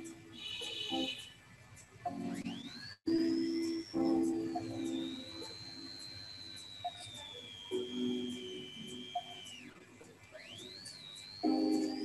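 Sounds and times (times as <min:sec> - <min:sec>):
high steady gliding tone: 0:02.2 - 0:09.8.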